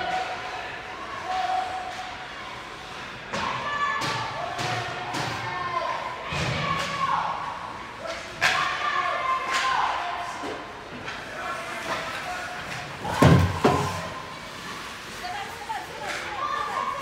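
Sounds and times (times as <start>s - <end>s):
puck and sticks hitting boards: 3.3s - 5.5s, 8.0s - 8.8s, 9.4s - 14.2s.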